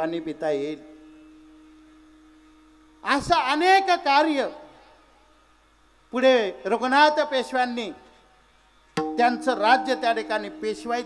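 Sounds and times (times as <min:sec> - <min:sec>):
faint steady tone: 0:00.0 - 0:03.2, 0:08.2 - 0:11.0
low hum: 0:09.0 - 0:11.0.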